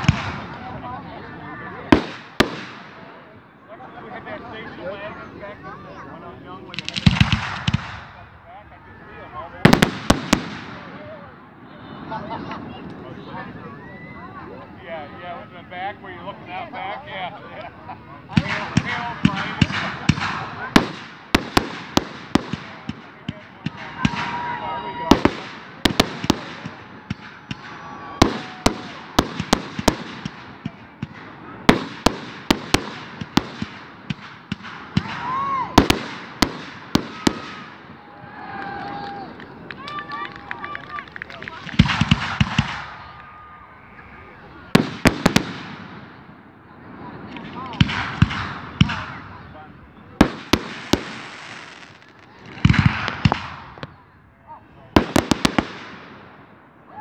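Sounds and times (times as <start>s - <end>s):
fireworks bursting: 0.0s - 1.0s, 1.8s - 3.4s, 6.6s - 8.4s, 9.1s - 11.4s, 17.3s - 56.7s.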